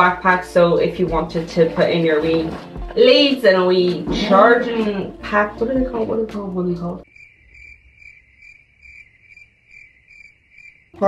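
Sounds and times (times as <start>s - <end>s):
cricket chirping trill: 7.0s - 11.0s.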